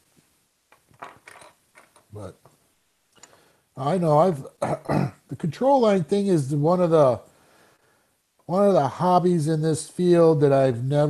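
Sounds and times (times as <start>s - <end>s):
clicks and rattles on tabletop: 0.7s - 2.6s.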